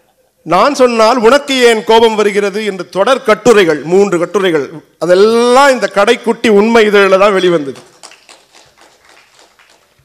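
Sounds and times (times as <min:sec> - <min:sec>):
faint audience clapping: 0:07.7 - 0:10.0.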